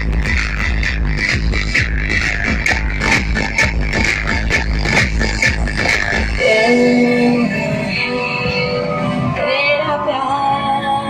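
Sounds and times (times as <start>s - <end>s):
loud electronic dance music: 0.0s - 11.0s.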